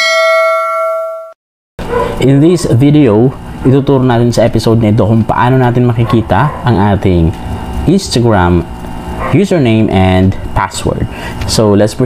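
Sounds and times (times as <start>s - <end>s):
notification bell ding: 0.0s - 1.4s.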